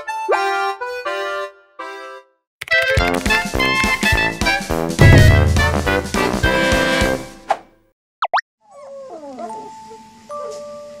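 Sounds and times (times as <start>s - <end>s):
puppy whining and howling: 8.6s - 10.5s.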